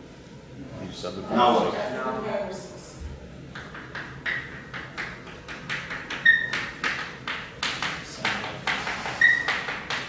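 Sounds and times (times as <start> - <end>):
chalk writing on chalkboard: 3.6 - 10.0
chalk squeak: 6.2 - 6.7, 8.8 - 9.8.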